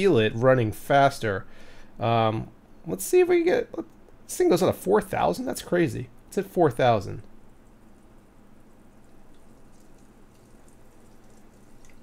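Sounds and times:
coolant swirling: 0:07.6 - 0:12.0.

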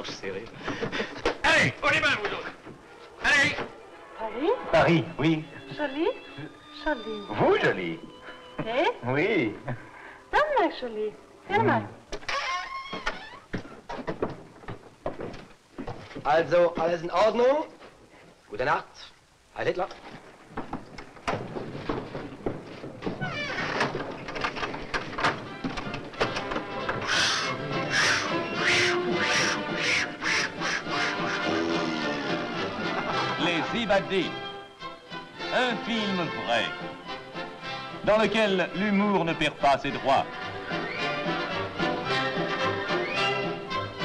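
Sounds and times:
orchestral film music: 0:01.5 - 0:11.4, 0:25.2 - 0:44.0
knocks: 0:12.9 - 0:16.3, 0:20.5 - 0:27.1
low recurring notes: 0:25.4 - 0:44.0.

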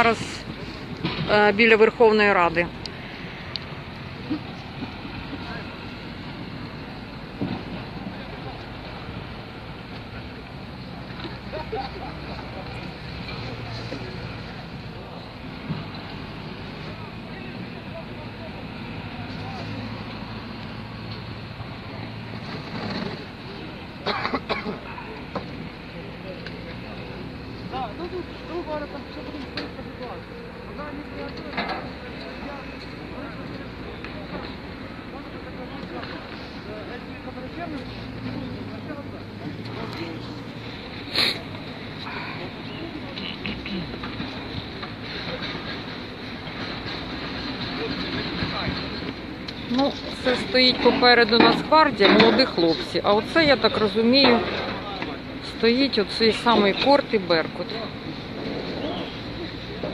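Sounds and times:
people talking: 0:00.0 - 0:02.8, 0:16.7 - 0:20.2, 0:22.9 - 0:58.1
tractor engine running: 0:00.0 - 0:59.9.

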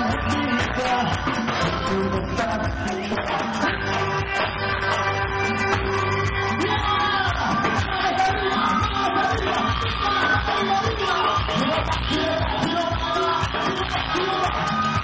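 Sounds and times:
live cumbia band with singing: 0:00.0 - 0:15.0
crowd shouting along: 0:06.6 - 0:15.0.

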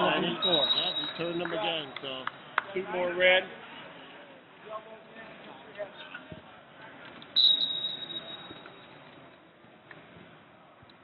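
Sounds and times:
referee's whistle blast: 0:00.4 - 0:01.4, 0:07.4 - 0:08.8.

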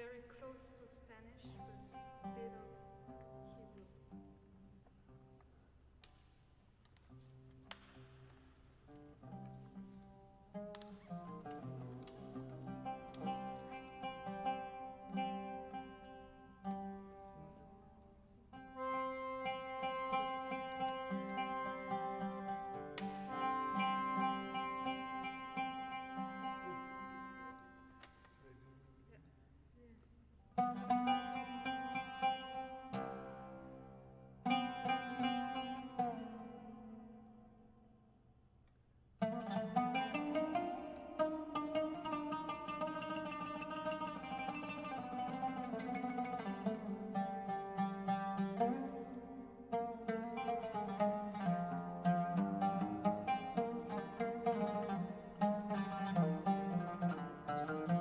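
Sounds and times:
plucked oud notes: 0:00.0 - 0:28.6, 0:30.4 - 0:38.1, 0:39.2 - 0:58.0
accordion chords: 0:18.6 - 0:28.1.

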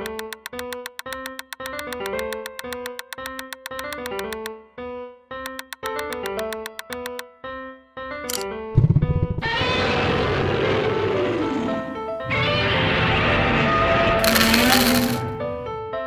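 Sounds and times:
light plucked background music: 0:00.0 - 0:04.8, 0:05.4 - 0:07.5
rasping monster roar: 0:09.4 - 0:15.0.

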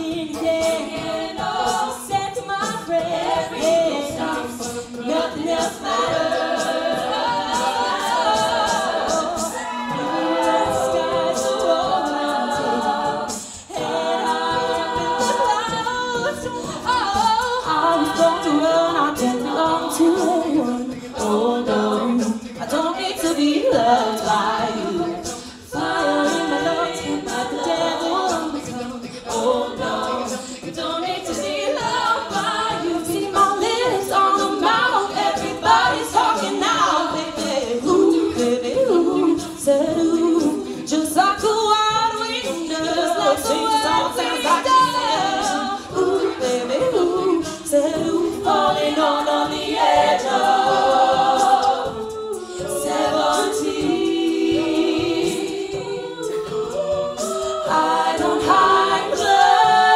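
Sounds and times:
a cappella ensemble singing: 0:00.0 - 0:59.9
vocal percussion ticking: 0:00.0 - 0:59.9.

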